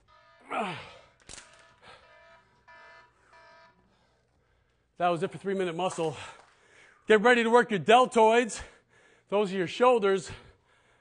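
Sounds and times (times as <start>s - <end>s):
electronic timer beeps: 1.4s - 3.8s.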